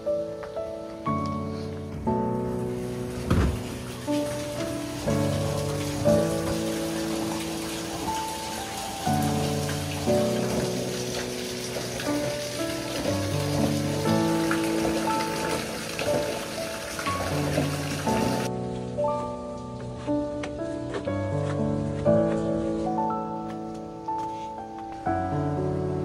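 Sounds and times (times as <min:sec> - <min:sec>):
background music of sustained notes: 0:00.0 - 0:26.0
water running into a bath: 0:02.3 - 0:18.5.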